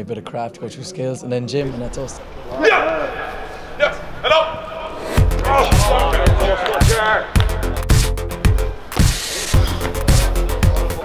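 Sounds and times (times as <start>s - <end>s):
men shouting short calls: 2.5s - 7.4s.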